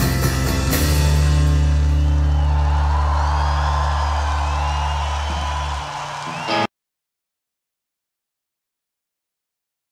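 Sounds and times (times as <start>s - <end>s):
crowd cheering faintly: 1.5s - 6.7s.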